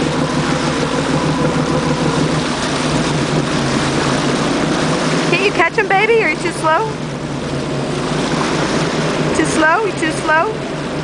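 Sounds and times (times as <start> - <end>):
boat engine running: 0.0 - 11.0
wake churning water: 0.0 - 11.0.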